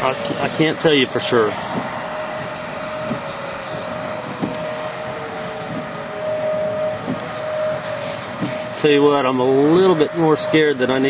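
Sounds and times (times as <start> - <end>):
wind rushing: 0.0 - 10.4
road noise: 0.0 - 11.0
warning siren: 0.0 - 11.0.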